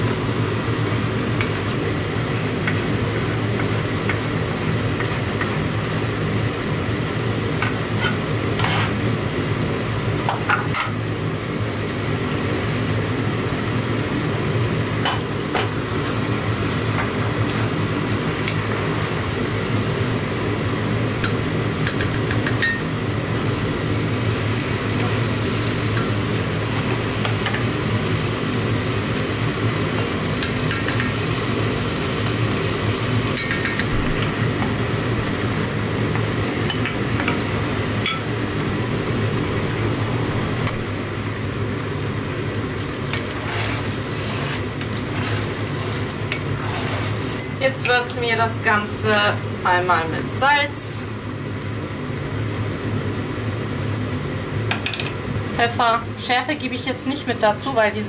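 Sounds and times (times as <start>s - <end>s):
vegetables sizzling in a pot: 0.0s - 57.8s
steady low hum: 0.0s - 58.0s.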